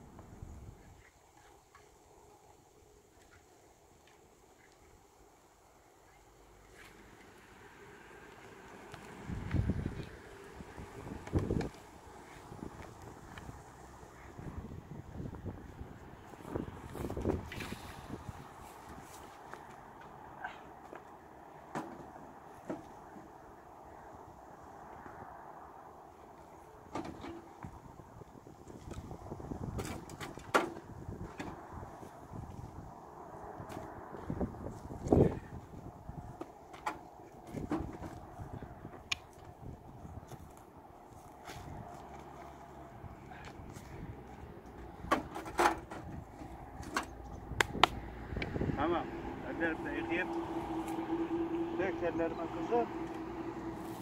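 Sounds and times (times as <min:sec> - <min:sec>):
knocks and clatters of firewood: 0:20.8 - 0:23.3, 0:26.9 - 0:27.8, 0:28.6 - 0:32.1, 0:36.2 - 0:42.6, 0:43.2 - 0:48.0.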